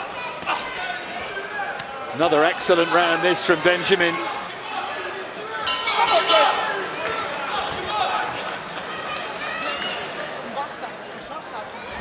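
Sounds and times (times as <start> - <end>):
arena crowd shouting: 0.0 - 10.6
boxing ring bell ringing: 5.7 - 6.9.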